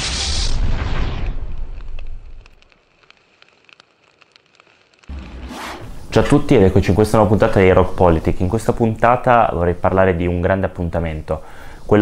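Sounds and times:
fire crackling: 0.0s - 12.0s.

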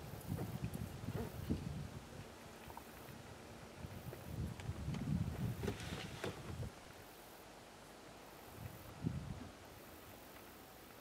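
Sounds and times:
wind buffeting microphone: 0.0s - 2.5s, 3.1s - 6.8s, 8.6s - 9.6s.

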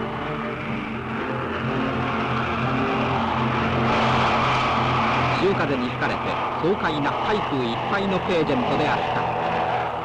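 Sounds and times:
propeller aircraft flying over: 0.0s - 10.0s.

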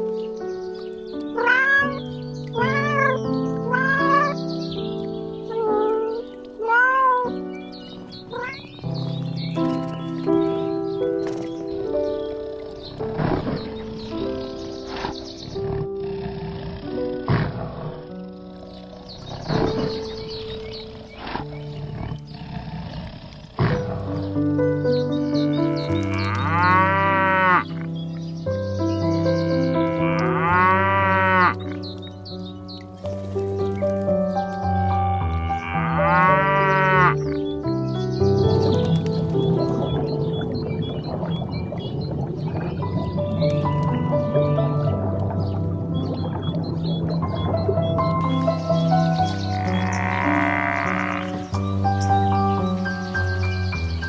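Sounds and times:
background music: 0.0s - 23.0s, 23.6s - 54.0s
cow mooing: 25.5s - 27.8s, 29.8s - 31.7s, 34.9s - 37.3s, 49.4s - 51.5s.

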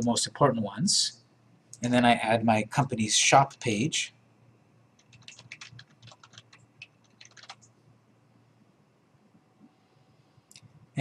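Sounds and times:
keyboard typing: 5.0s - 7.7s.

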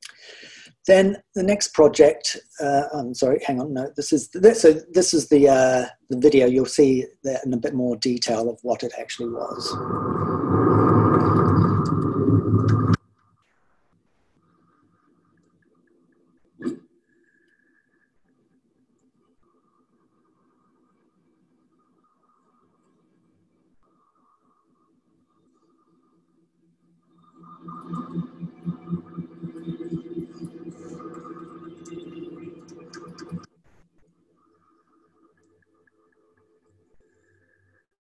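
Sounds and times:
steady high hum: 8.8s - 13.0s, 27.0s - 33.5s
low rumbling drone: 9.4s - 13.0s, 27.2s - 33.5s.

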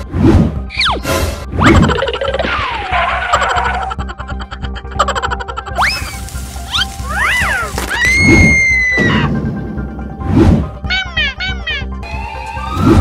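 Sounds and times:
cartoon background music: 0.0s - 13.0s.

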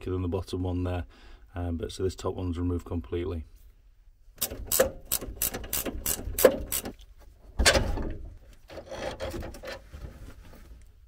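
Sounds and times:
ratchet spanner clicking: 4.4s - 7.0s
metal strap scraping and rattling: 4.5s - 10.8s.

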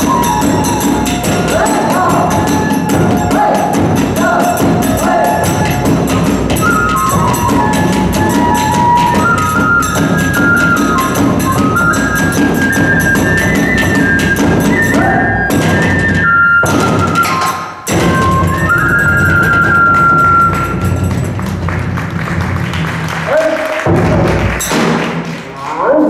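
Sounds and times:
small hand cymbals clashing: 0.0s - 14.9s
bamboo flute melody: 0.0s - 21.9s
large barrel drum strokes: 0.0s - 23.2s.

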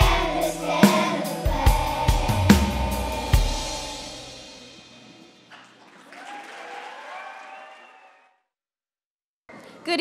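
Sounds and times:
audience applause: 5.5s - 8.4s.

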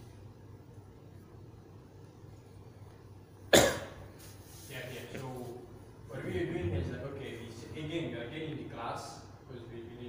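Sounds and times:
person coughing: 3.5s - 4.0s.

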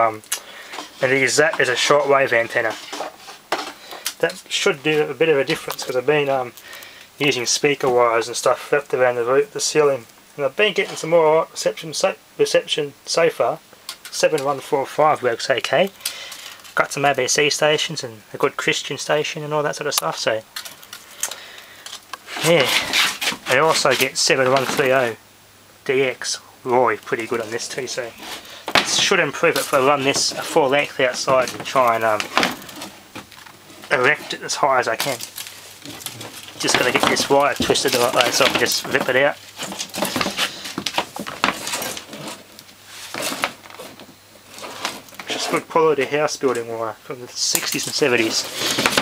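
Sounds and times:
wire coils rustling: 0.0s - 11.8s, 19.0s - 25.2s, 25.9s - 49.0s.

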